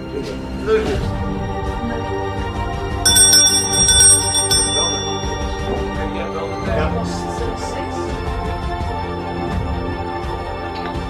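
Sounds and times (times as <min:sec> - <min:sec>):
background music: 0:00.0 - 0:11.0
hand bell ringing: 0:03.1 - 0:06.0.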